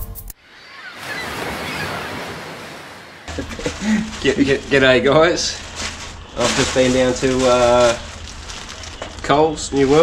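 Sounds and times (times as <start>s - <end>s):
ocean waves washing: 0.4s - 7.1s.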